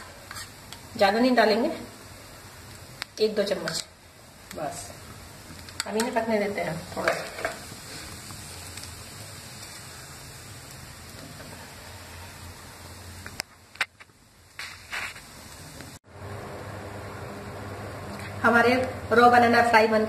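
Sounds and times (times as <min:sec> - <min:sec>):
slices sizzling in oil: 0:00.0 - 0:16.0.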